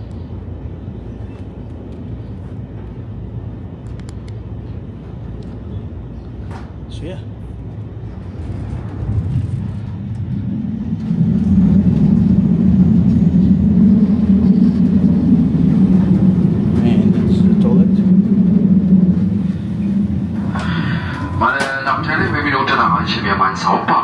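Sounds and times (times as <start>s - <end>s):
train rumble inside carriage: 0.0s - 24.0s.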